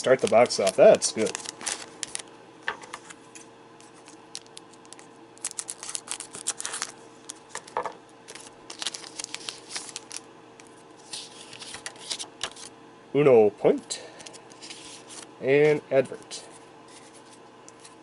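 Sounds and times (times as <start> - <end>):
foil pack tearing and crinkling: 0.0 - 2.3, 3.9 - 7.7, 8.3 - 10.3
cards sliding out of wrapper: 0.2 - 2.3, 3.8 - 7.7, 8.3 - 12.7, 14.2 - 15.3.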